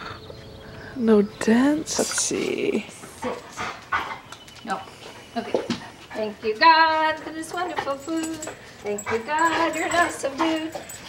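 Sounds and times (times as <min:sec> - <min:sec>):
dog panting: 0:02.9 - 0:11.0.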